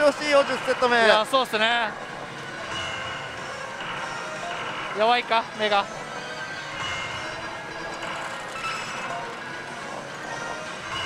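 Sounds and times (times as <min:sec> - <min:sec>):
slot machine sound effects and music: 0:00.0 - 0:11.0.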